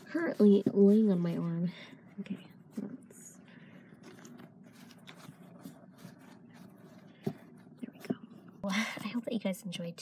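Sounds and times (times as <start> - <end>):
soft rustling against fabric: 0.0 - 9.5.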